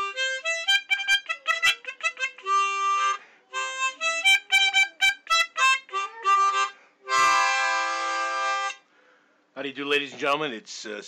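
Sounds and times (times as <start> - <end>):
harmonica chord: 0.0 - 9.2.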